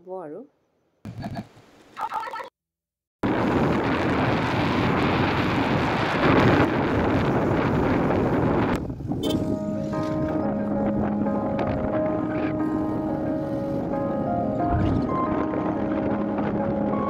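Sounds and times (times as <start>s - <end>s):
wind buffeting microphone: 3.2s - 17.0s.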